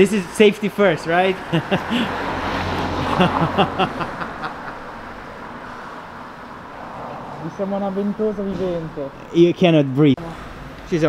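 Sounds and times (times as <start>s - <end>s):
vehicle passing on street: 0.0s - 11.0s
short laughs: 3.0s - 4.8s.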